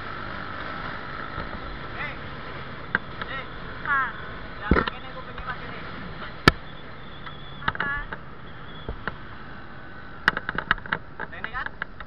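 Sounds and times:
scooter riding on road: 0.0s - 12.0s
brief squeak: 6.6s - 7.8s, 8.4s - 9.0s.

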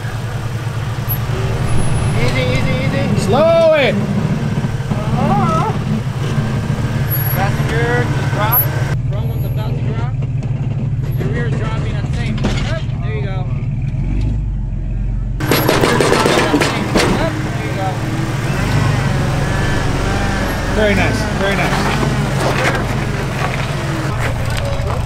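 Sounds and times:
voices calling: 0.0s - 13.8s, 14.6s - 25.0s
engine running at low revs: 0.0s - 25.0s.

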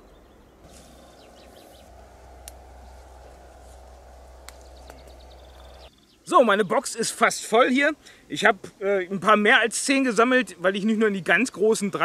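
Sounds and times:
low steady rumble: 0.0s - 5.9s
birds chirping: 0.0s - 6.9s
sharp clicks: 0.7s - 5.9s.

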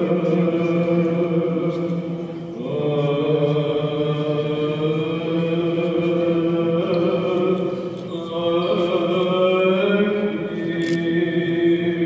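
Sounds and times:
voices chanting long held notes: 2.6s - 10.8s.

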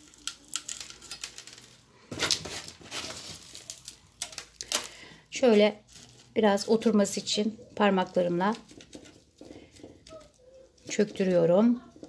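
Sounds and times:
soil rustling scrape: 2.1s - 4.0s.

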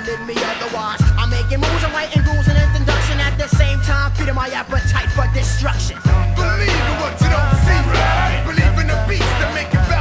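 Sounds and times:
hip hop beat with heavy bass: 0.0s - 10.0s.

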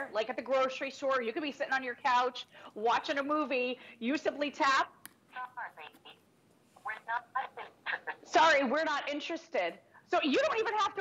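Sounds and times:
recorded voice through phone speaker: 5.4s - 6.2s, 6.8s - 9.1s.

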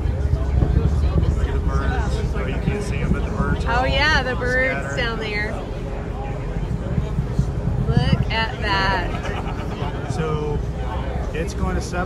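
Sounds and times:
distant rocket engine rumble: 0.0s - 12.0s
people's voices: 0.0s - 12.0s.

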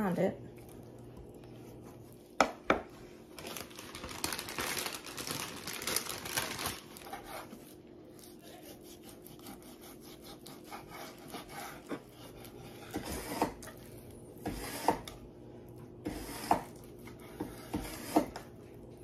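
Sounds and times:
knife cutting meat: 7.1s - 13.8s, 16.0s - 18.4s.

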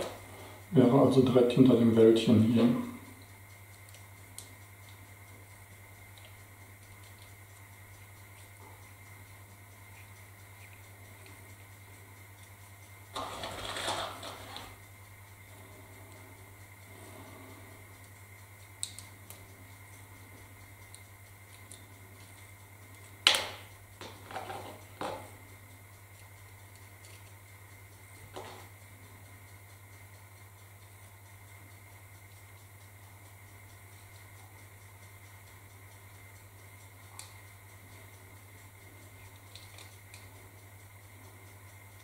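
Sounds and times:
steady low hum: 0.0s - 42.0s
small parts clicking and tapping: 39.0s - 40.4s.

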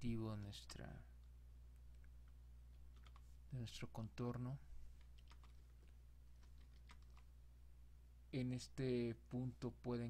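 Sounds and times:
low steady hum: 0.0s - 10.0s
computer keyboard clicks: 2.9s - 3.3s, 5.0s - 7.3s.

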